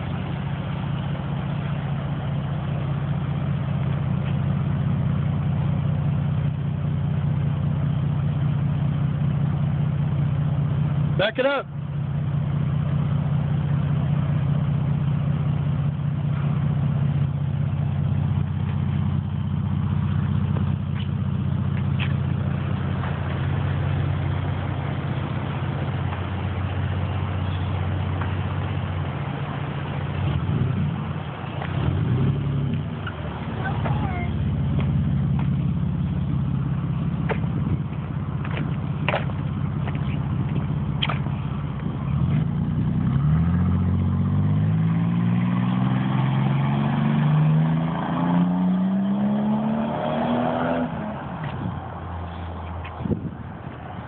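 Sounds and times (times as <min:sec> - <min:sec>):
car engine idling: 0:00.0 - 0:45.2, 0:50.9 - 0:54.0
car engine accelerating: 0:00.0 - 0:54.0.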